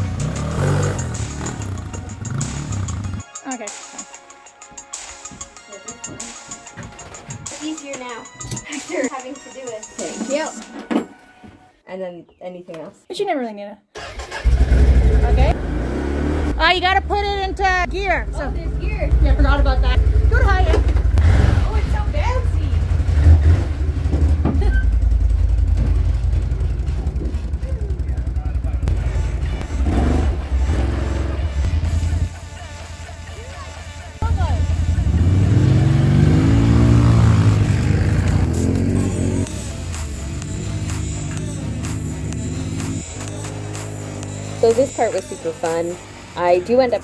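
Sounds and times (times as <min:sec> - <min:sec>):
atv engines revving: 0:00.0 - 0:03.2, 0:14.0 - 0:47.0.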